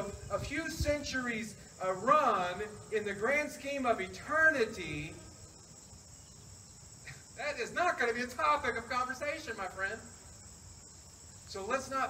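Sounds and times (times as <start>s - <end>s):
high-pitched insect chorus: 0.0s - 12.0s.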